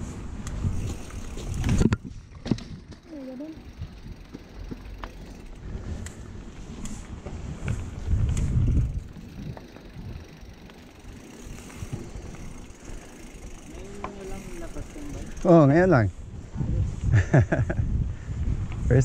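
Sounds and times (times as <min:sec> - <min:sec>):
bike tyres rumbling on dirt: 0:00.0 - 0:16.5
wind: 0:00.0 - 0:19.0
bike clicks and rattles: 0:00.2 - 0:16.0.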